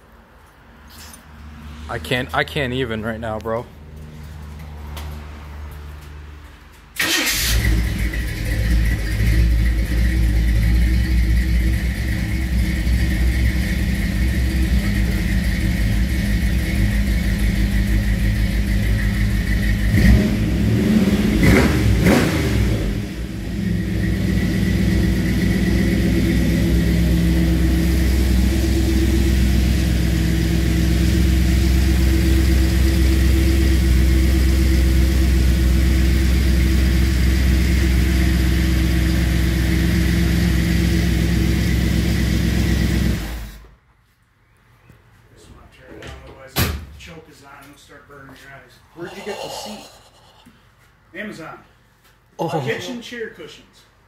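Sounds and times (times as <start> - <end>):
car engine starting and idling: 6.7 - 43.8.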